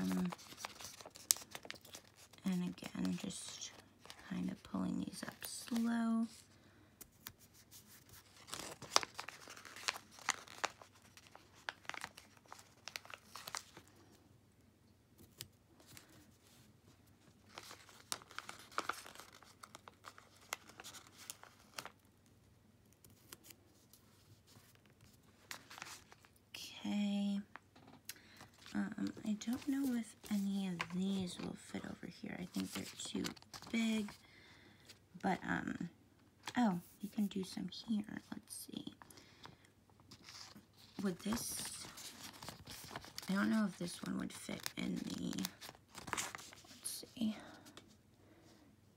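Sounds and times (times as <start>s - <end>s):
sticker sheet crinkling: 0.0s - 6.3s, 7.1s - 13.9s, 17.5s - 22.0s, 28.3s - 34.2s, 40.1s - 47.8s.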